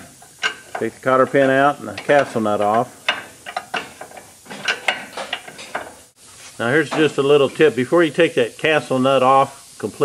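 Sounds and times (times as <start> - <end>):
ratcheting wrench clicking: 0.2 - 6.0.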